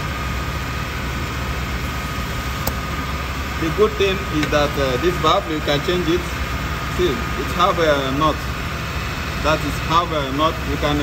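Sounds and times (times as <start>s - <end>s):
air conditioning running: 0.0s - 11.0s.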